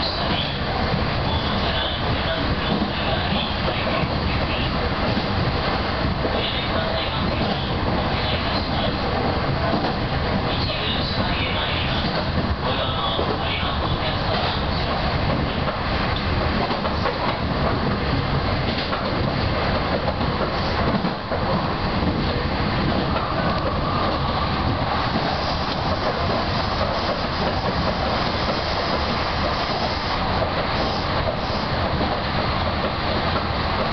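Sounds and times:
train wheels on rails: 0:00.0 - 0:33.9.

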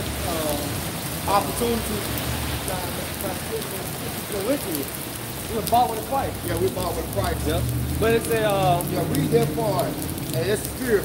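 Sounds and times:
rain on wet pavement: 0:00.0 - 0:11.0.

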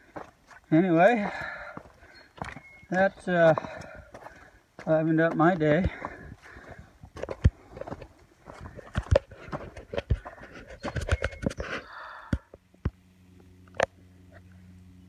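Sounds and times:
footsteps on rocky trail: 0:00.0 - 0:12.4
low steady hum: 0:00.0 - 0:15.0.

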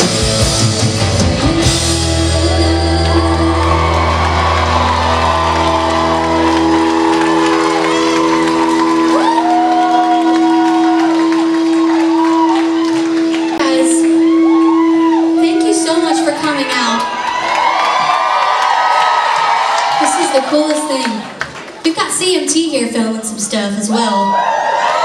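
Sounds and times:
rock band chord ringing out: 0:00.0 - 0:17.1
crowd cheering and whooping: 0:01.6 - 0:21.8, 0:23.8 - 0:25.0.

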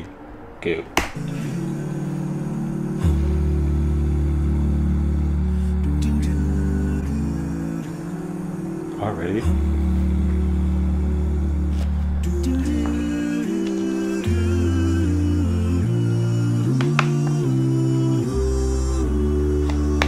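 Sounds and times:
deep bass voice holding low note: 0:00.0 - 0:16.8
vocal group humming chords: 0:00.0 - 0:20.0.

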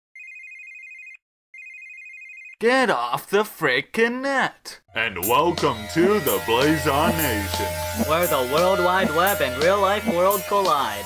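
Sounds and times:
telephone ringing: 0:00.2 - 0:02.6.

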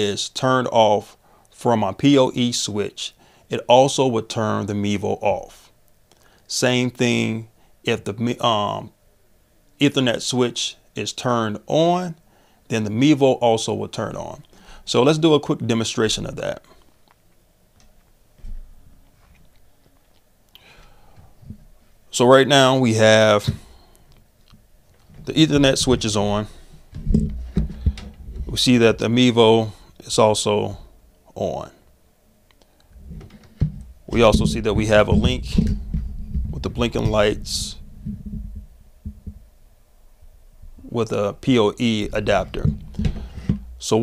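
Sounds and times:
faint low rumble: 0:18.0 - 0:32.1, 0:32.8 - 0:44.0
dull low thump: 0:25.2 - 0:28.7, 0:33.0 - 0:39.5, 0:42.0 - 0:43.9
hands handling at a desk: 0:26.8 - 0:28.5, 0:42.4 - 0:43.8.

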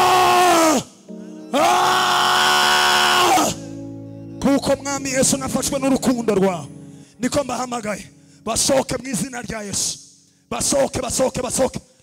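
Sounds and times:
sustained music: 0:00.2 - 0:09.3
man crying out into microphone: 0:01.5 - 0:03.6.

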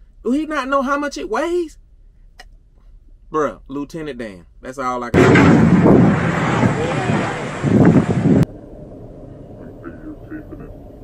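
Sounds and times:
wind rushing on microphone: 0:05.2 - 0:09.9
faint voices: 0:06.2 - 0:07.7.

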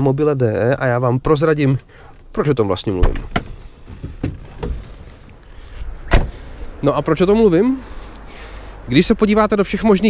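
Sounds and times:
man speaking: 0:00.0 - 0:03.3, 0:06.8 - 0:07.9, 0:08.9 - 0:10.0
car door shutting: 0:03.0 - 0:05.3, 0:06.1 - 0:06.4.

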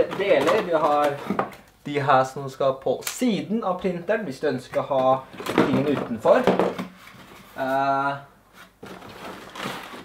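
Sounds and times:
cardboard scraping and rustling: 0:08.6 - 0:10.0.

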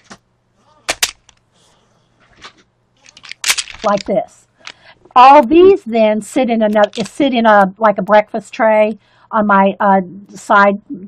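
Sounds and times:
wooden pencils clicking: 0:00.9 - 0:01.4, 0:03.0 - 0:04.8, 0:06.7 - 0:07.2.

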